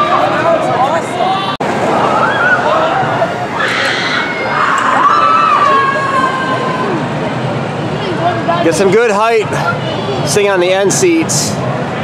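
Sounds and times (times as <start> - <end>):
riders screaming and shouting: 1.9 - 7.2
long held scream dropping in pitch: 2.0 - 7.0.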